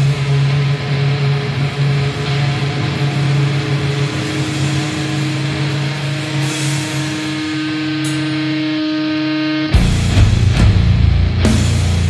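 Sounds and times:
distorted guitar and bass riff: 0.0s - 12.0s.

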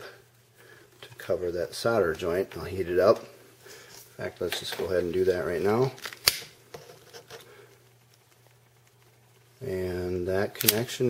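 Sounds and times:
faint soft handling ticks: 7.1s - 10.9s.

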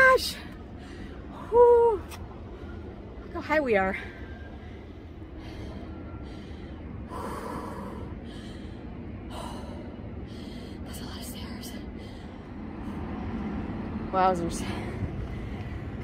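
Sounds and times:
woman panting: 5.4s - 10.9s.

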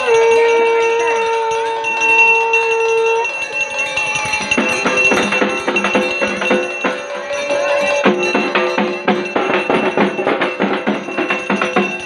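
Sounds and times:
long steady note: 0.0s - 9.7s
faint crowd voices: 0.0s - 11.6s
higher steady tone: 0.0s - 12.0s.

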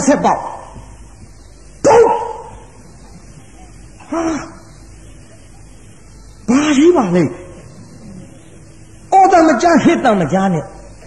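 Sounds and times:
dog barking: 1.8s - 2.6s.

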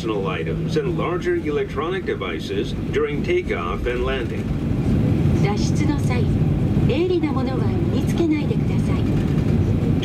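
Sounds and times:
aircraft engines rumbling: 0.0s - 10.0s.

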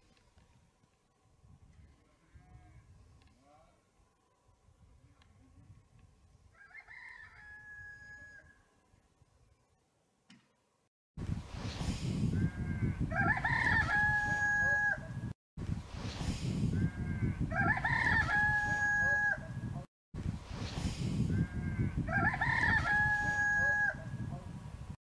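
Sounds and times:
rooster crowing: 6.5s - 8.7s, 12.6s - 15.1s, 17.0s - 19.5s, 21.6s - 24.2s.

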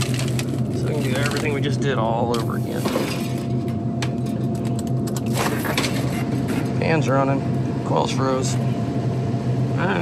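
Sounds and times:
faint steady whine: 0.0s - 10.0s
low machinery hum: 0.0s - 10.0s.

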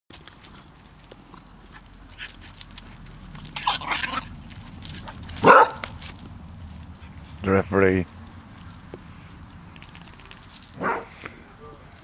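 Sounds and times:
dogs scuffling on grass: 0.1s - 12.0s
dog barking: 5.4s - 5.9s, 10.8s - 11.1s.

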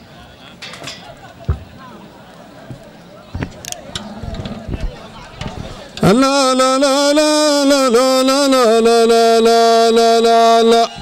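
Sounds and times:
crowd of men chattering: 0.0s - 11.0s.

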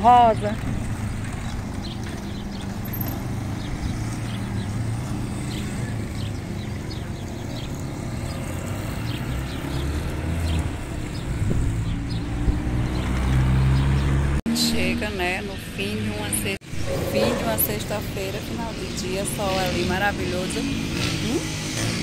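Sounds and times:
car engine hum: 0.0s - 14.4s.

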